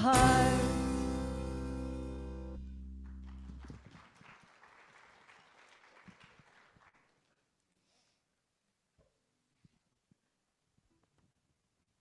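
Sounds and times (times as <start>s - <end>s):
faint applause: 3.0s - 7.4s.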